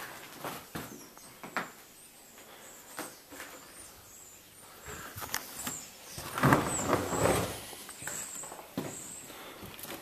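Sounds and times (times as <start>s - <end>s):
footsteps on gritty floor: 4.9s - 10.0s.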